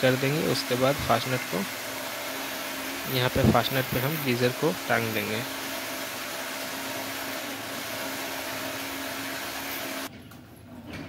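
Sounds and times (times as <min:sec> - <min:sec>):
hammer drill boring into wall: 0:00.0 - 0:10.1.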